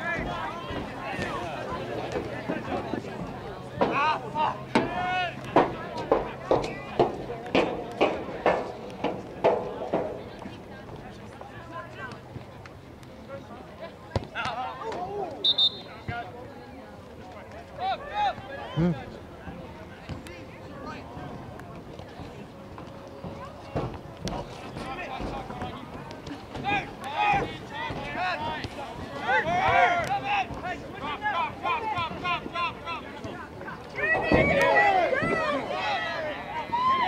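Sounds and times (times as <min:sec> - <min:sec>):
people shouting: 0:34.0 - 0:37.0.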